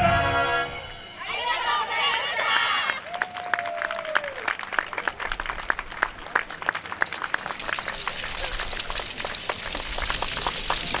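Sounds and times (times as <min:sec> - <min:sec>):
audience applause: 0:02.4 - 0:11.0
wooden clappers clacking: 0:06.3 - 0:11.0.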